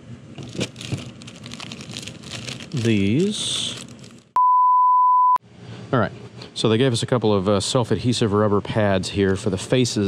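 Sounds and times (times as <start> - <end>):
electronic beep: 4.4 - 5.4.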